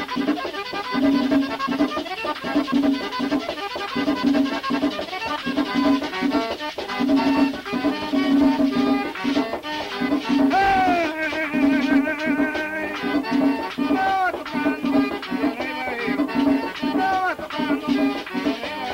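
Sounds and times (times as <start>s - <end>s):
accordion-led dance music: 0.0s - 18.9s.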